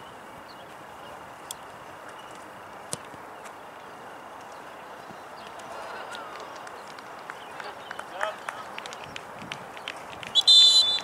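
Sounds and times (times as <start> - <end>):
distant shouts: 10.4 - 11.0
referee's whistle blast: 10.4 - 11.0.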